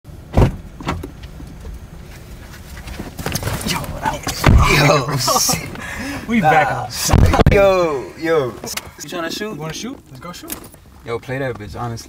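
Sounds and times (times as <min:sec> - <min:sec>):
loud thump: 0:00.3 - 0:01.1, 0:04.3 - 0:04.9, 0:07.0 - 0:07.7
rustling: 0:01.2 - 0:07.8.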